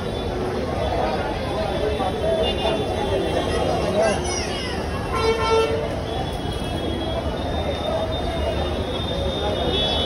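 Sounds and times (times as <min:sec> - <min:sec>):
crowd voices: 0:00.0 - 0:10.0
street noise: 0:00.0 - 0:10.0.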